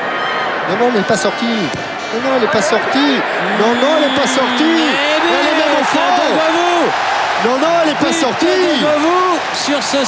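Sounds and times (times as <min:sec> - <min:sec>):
stadium crowd noise: 0:00.0 - 0:10.0
men commentating: 0:00.6 - 0:10.0.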